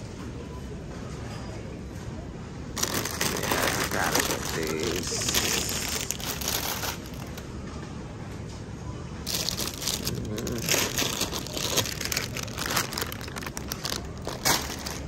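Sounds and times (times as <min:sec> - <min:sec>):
plastic bags crinkling: 0:02.8 - 0:07.4, 0:09.2 - 0:15.0.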